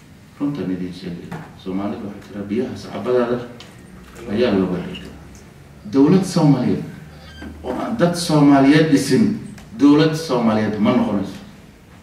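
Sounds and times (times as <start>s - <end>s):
man speaking into a microphone: 0.4s - 3.6s, 4.2s - 11.6s.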